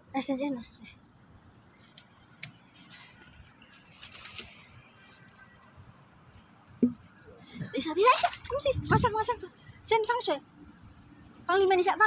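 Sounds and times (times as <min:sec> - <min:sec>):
cast net rustling and scratching: 0:01.7 - 0:06.6.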